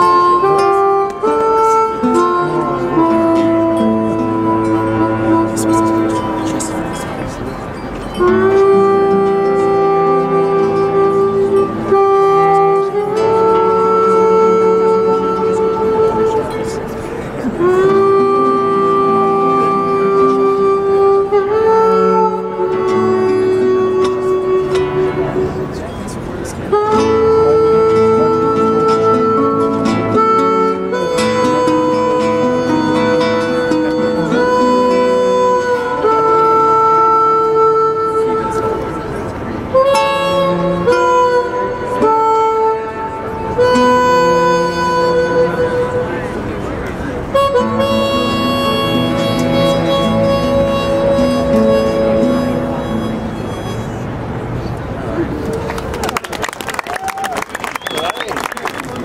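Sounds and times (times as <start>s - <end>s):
bowed cello: 0.0s - 54.8s
harmonica melody: 0.0s - 55.3s
acoustic guitar: 0.0s - 55.5s.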